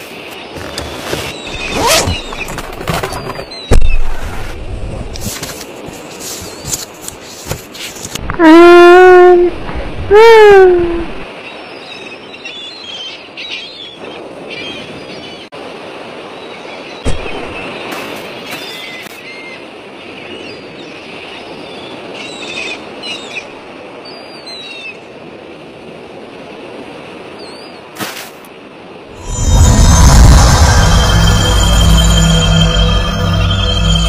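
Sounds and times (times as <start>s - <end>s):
steady rushing noise: 29.1s - 34.0s.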